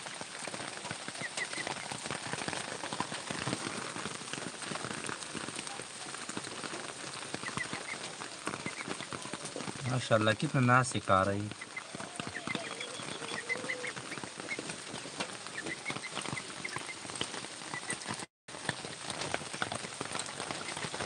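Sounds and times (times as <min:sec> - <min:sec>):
rain pattering: 0:00.0 - 0:21.0.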